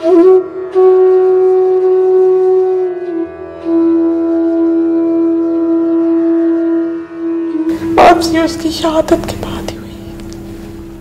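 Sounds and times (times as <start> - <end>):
flute holding a long note: 0.0 - 9.0.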